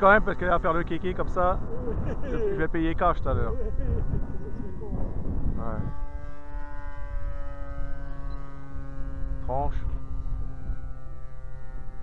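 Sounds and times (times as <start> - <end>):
model airplane engine drone: 0.0 - 12.0
wind rumbling on microphone: 0.0 - 12.0.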